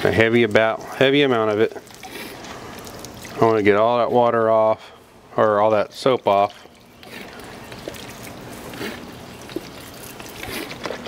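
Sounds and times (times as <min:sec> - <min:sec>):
water squirting from squeeze bottle: 0:00.6 - 0:03.6, 0:06.4 - 0:11.0.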